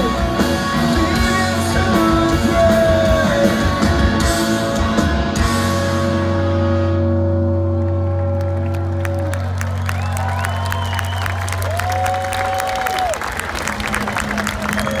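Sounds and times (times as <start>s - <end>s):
rock band held chord: 0.0s - 10.0s
crowd applause and cheering: 7.6s - 15.0s.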